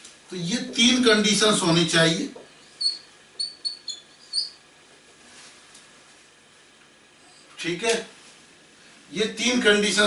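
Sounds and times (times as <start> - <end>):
marker squeaking on whiteboard: 2.6 - 4.6.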